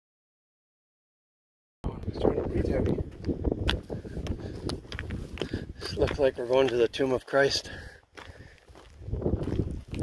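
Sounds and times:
wind rumbling on microphone: 1.8s - 7.0s, 7.7s - 10.0s
footsteps on gravel: 2.6s - 10.0s.

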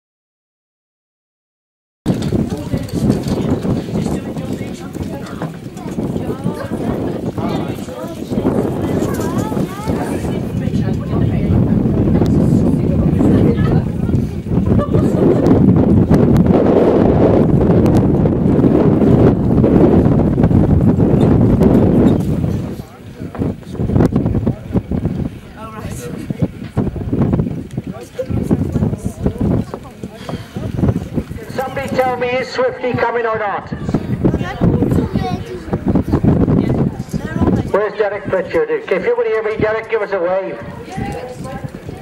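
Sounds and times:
horse hoofbeats: 2.1s - 8.2s
people talking indistinctly: 2.1s - 16.7s, 18.8s - 42.0s
wind buffeting microphone: 2.1s - 42.0s.

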